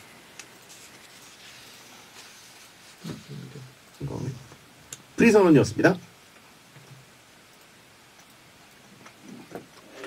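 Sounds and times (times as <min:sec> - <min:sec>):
very soft small noises: 0:00.0 - 0:05.2
faint hiss: 0:00.0 - 0:10.0.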